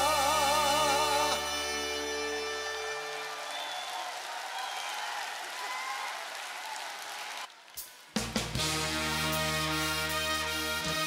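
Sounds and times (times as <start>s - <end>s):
held music chord: 0.0s - 3.5s
audience applauding: 1.8s - 8.2s.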